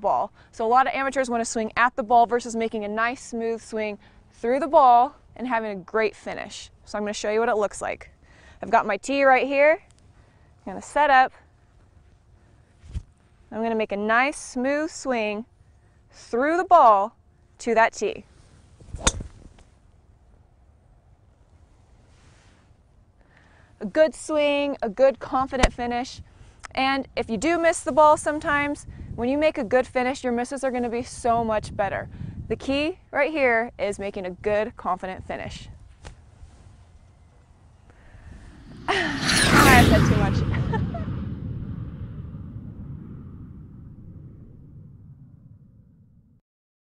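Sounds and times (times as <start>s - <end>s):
golf club striking ball: 19.0s - 19.4s
low rumbling noise: 37.8s - 46.4s.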